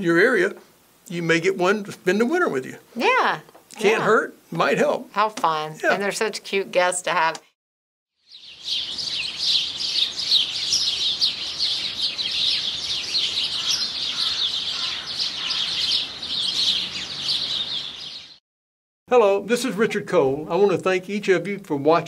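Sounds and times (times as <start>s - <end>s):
songbirds chirping and singing: 8.2s - 18.4s.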